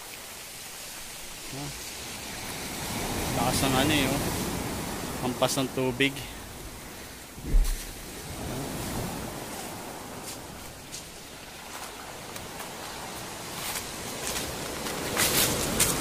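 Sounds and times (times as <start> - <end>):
waves washing over cobble beach: 0.0 - 16.0
low thump: 7.4 - 8.0.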